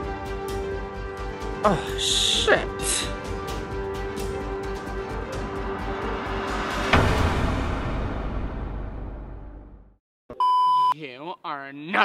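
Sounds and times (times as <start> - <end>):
background music: 0.0 - 9.9
censor bleep: 10.3 - 11.0.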